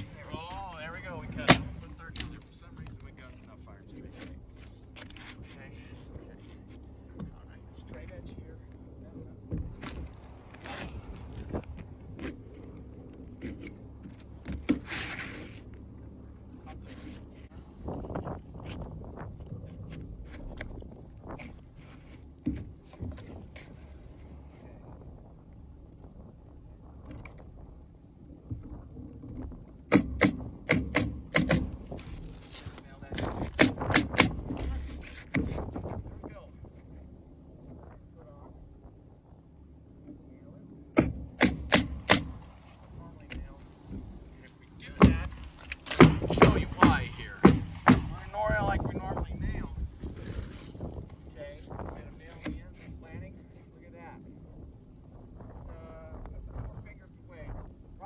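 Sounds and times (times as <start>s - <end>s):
shingles rustling: 1.6s - 38.2s, 40.6s - 48.5s, 49.7s - 55.4s
nail gun firing: 29.9s - 31.8s, 33.4s - 34.4s, 41.0s - 42.4s, 45.0s - 48.2s.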